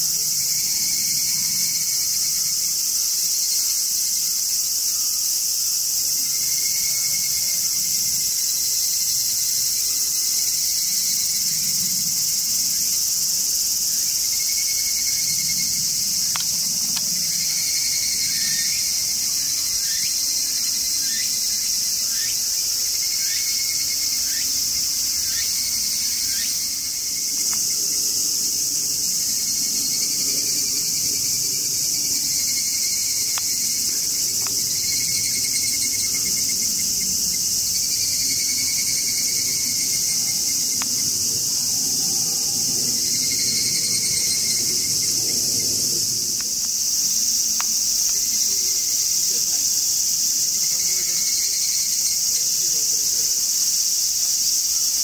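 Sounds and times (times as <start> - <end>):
insects buzzing: 0.0 - 55.0.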